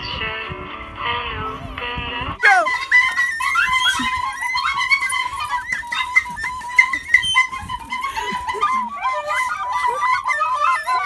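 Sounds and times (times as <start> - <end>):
pipe playing melody: 1.5 - 11.0.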